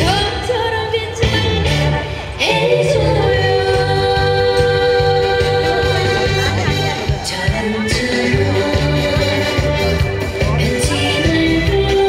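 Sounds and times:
amplified pop music with beat: 0.0 - 12.0
woman singing into a microphone: 0.0 - 12.0.

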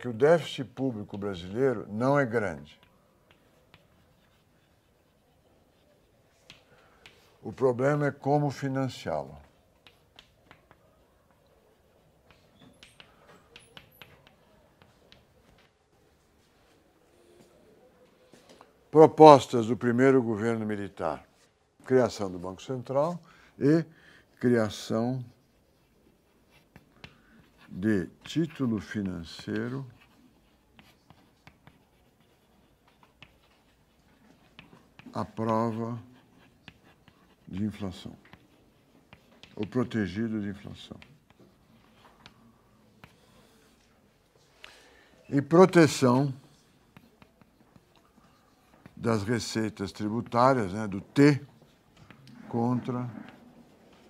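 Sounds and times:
chalk tapping on blackboard: 2.7 - 7.4, 9.2 - 15.7, 24.8 - 43.9.

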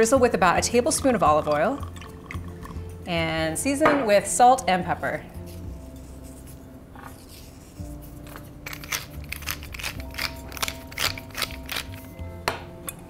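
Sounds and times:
soft background music: 0.0 - 13.0
pepper mill grinding clicks: 8.6 - 12.0.

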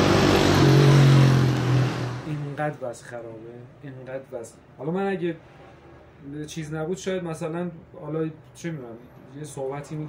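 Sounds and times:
motor vehicle passing by: 0.0 - 2.6.

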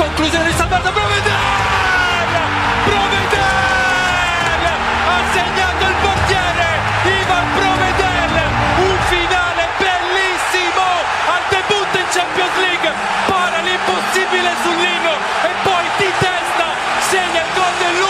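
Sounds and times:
background music: 0.0 - 18.0
commentator shouting: 0.0 - 18.0.

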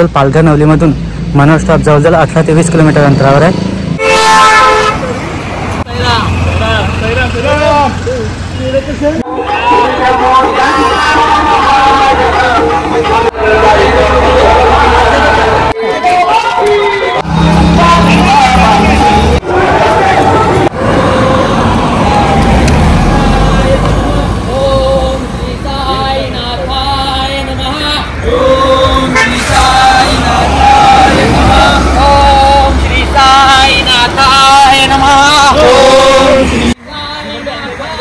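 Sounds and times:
vehicle horn tooting: 4.0 - 5.1, 15.8 - 19.4, 29.0 - 30.4
car passing on asphalt: 17.2 - 36.8.

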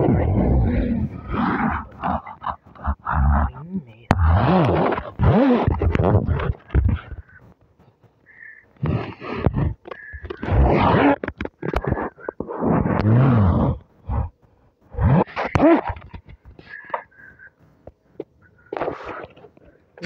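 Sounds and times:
man making breathy sounds: 1.0 - 4.1.

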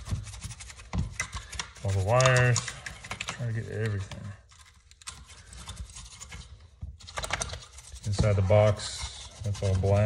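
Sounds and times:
brush scratching over panel: 0.0 - 10.0.

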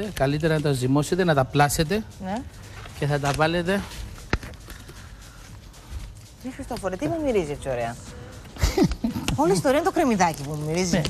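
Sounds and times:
low steady background sound: 0.0 - 11.0.

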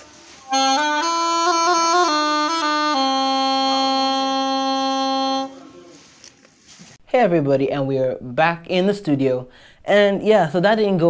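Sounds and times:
faint room sound: 0.0 - 11.0
reed wind instrument long note: 0.1 - 6.0.

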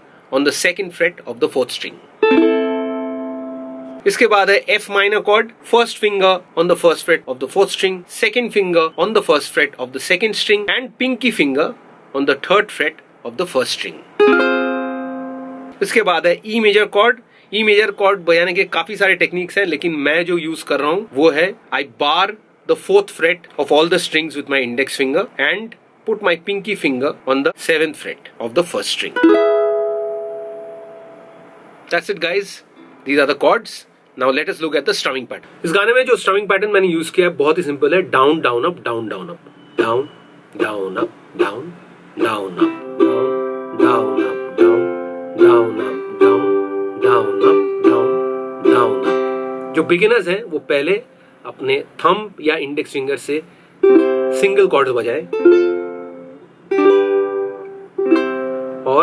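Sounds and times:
ukulele chord strummed: 2.2 - 4.1, 14.2 - 15.8, 29.2 - 31.5, 32.8 - 33.1, 42.2 - 49.9, 53.8 - 54.5, 55.3 - 58.8.

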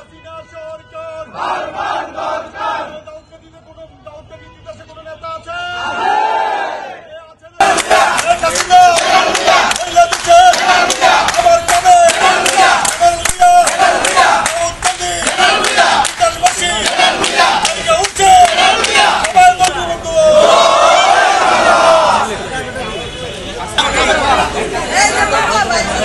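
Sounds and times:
crowd chanting slogans: 1.2 - 3.0, 5.8 - 22.5, 23.8 - 26.0
many voices shouting: 5.7 - 7.0, 7.6 - 22.4
hand clapping: 7.7 - 19.8.

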